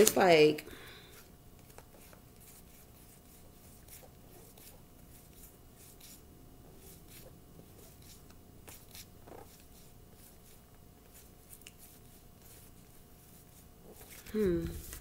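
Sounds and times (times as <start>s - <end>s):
cards shuffling by hand: 0.0s - 0.4s, 1.1s - 6.2s, 6.8s - 15.0s.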